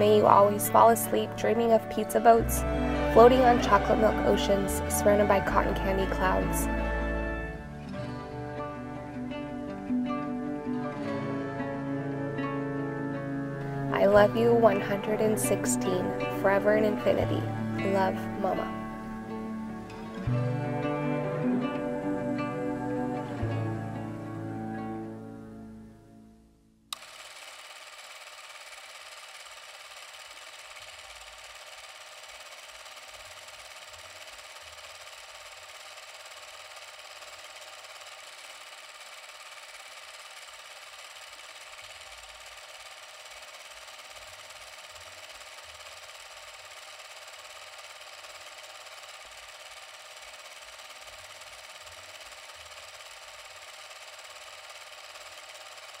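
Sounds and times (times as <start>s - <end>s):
film projector whirring: 0.0s - 25.2s, 26.9s - 56.0s.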